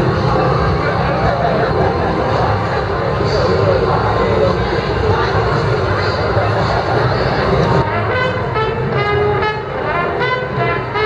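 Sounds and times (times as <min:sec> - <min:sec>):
crowd chatter: 0:00.0 - 0:11.0
street noise: 0:00.0 - 0:11.0
street band horns playing: 0:06.2 - 0:11.0.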